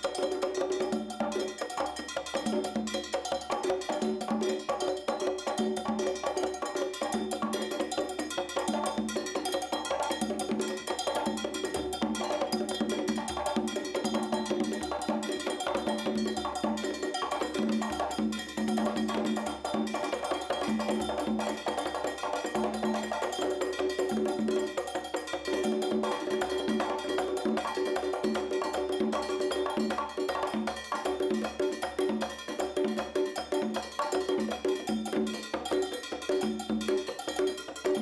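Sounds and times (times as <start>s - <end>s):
conga drums: 0.0s - 38.0s
cowbell struck with drumstick: 0.0s - 38.0s.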